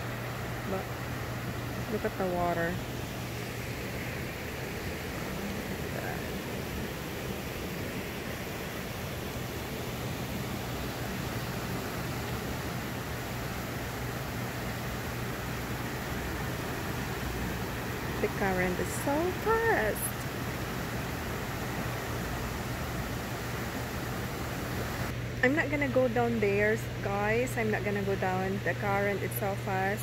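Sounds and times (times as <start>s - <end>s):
water rushing and churning: 0.0s - 25.2s
low hum: 0.0s - 30.0s.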